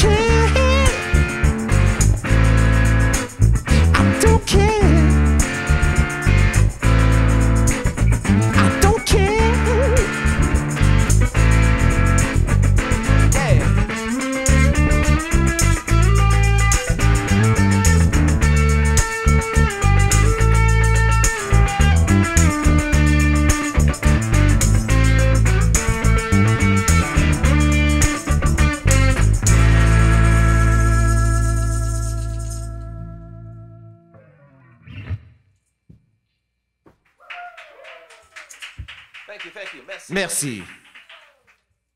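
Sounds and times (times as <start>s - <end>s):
electric guitar picking notes: 0.0s - 34.9s
bass guitar low notes: 0.0s - 35.4s.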